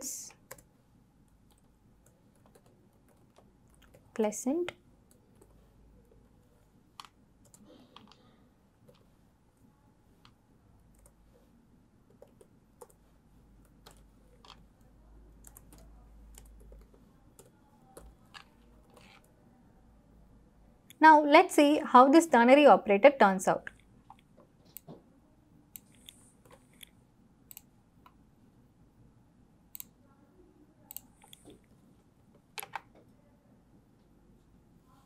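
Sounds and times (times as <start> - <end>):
low steady hum: 0.0 - 35.0
laptop keyboard typing: 0.3 - 9.1, 10.2 - 11.2, 12.1 - 19.4, 32.4 - 32.9.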